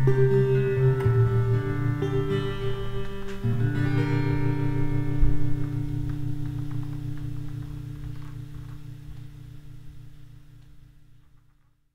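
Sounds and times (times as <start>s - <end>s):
electric guitar chord: 0.0s - 11.0s
amplifier hum: 0.0s - 11.9s
faint guitar string clicks: 4.8s - 9.5s.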